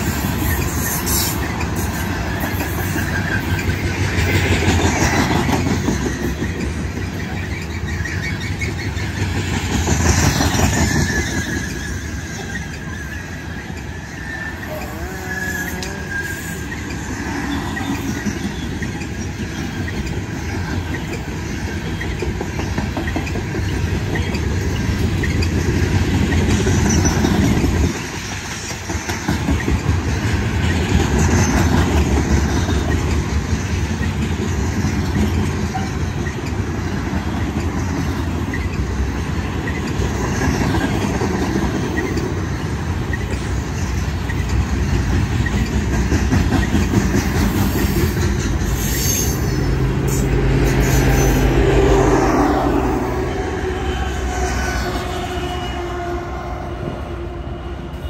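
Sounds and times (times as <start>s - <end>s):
clickety-clack over rail joints: 0.0s - 53.1s
train wheels rumbling on rails: 0.0s - 58.0s.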